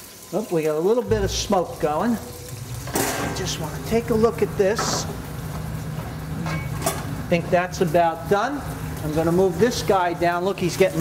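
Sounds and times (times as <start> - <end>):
kitchen fan humming: 0.0 - 11.0.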